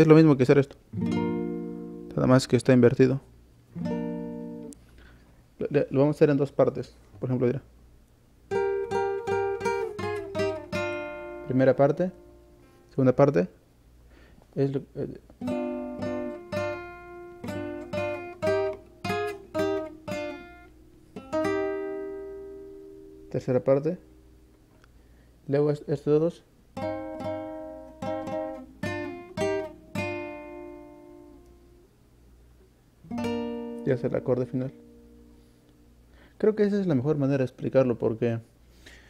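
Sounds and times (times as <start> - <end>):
guitar chord strummed: 0.9 - 2.4, 3.8 - 4.8, 8.5 - 12.8, 15.4 - 24.3, 26.8 - 31.8, 33.1 - 35.9.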